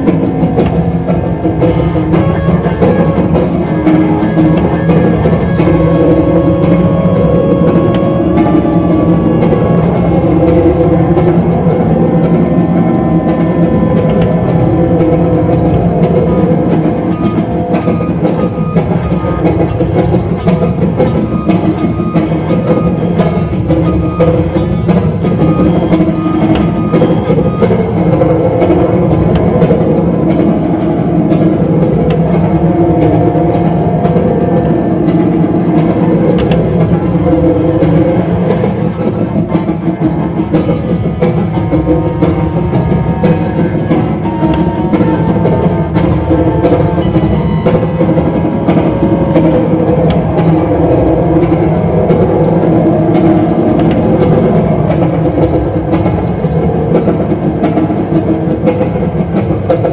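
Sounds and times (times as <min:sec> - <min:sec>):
amplified guitars playing low notes: 0:00.0 - 0:59.9.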